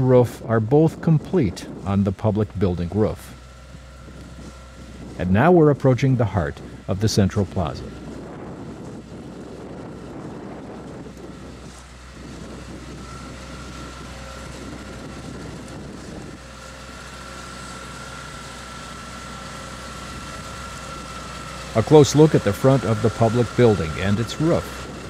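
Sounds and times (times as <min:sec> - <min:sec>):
wind noise on microphone: 0:00.0 - 0:16.5, 0:20.0 - 0:25.0
motor humming with high whine: 0:00.0 - 0:25.0.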